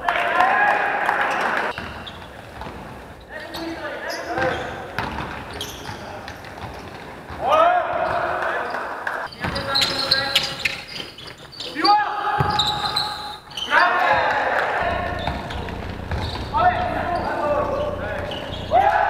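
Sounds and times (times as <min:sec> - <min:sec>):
basketball bouncing on court: 0:04.4 - 0:10.3, 0:12.4 - 0:13.0, 0:14.1 - 0:19.0
players calling out: 0:07.3 - 0:19.0.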